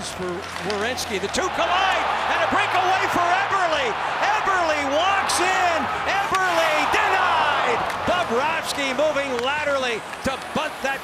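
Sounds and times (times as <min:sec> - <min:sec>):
excited commentary: 0:00.7 - 0:11.0.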